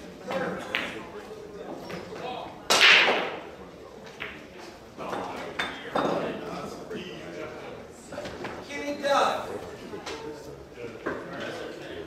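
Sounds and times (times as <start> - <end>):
low background voices: 0.0 - 12.0.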